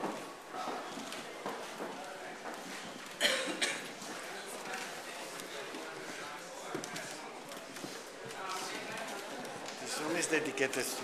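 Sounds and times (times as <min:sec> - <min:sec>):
footsteps on wooden floor: 0:00.0 - 0:03.2, 0:03.8 - 0:09.8
murmur of voices: 0:00.0 - 0:11.0.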